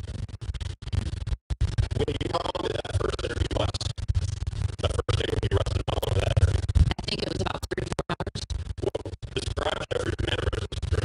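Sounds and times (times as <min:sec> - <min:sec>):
glitching stuttering audio: 0:00.0 - 0:11.0
low hum: 0:00.0 - 0:11.0.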